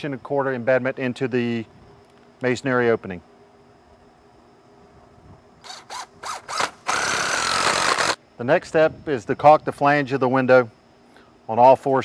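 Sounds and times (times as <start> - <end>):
cordless drill into concrete: 5.6 - 8.2.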